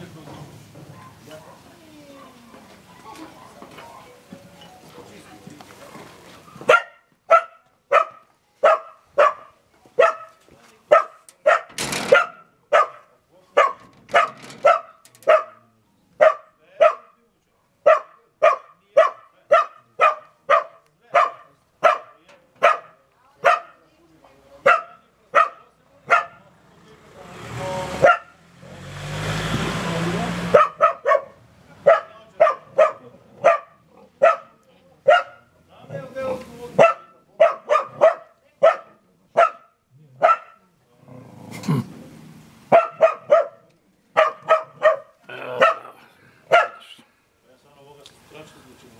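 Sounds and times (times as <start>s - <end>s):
dog barking sharply: 6.6s - 15.6s, 16.2s - 17.2s, 17.8s - 23.8s, 24.6s - 26.4s, 28.0s - 28.4s, 30.4s - 35.5s, 36.8s - 40.7s, 42.7s - 47.0s.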